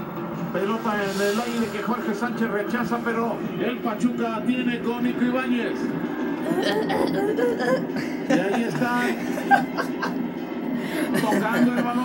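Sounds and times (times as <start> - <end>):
person chuckling: 6.5 - 10.2.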